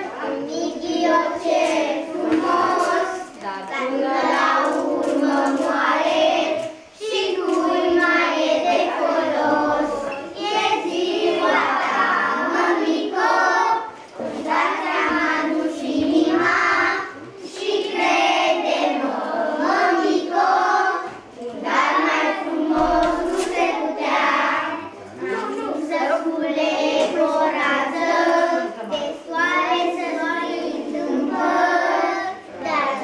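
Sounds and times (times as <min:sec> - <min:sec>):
children singing: 0:00.0 - 0:33.0.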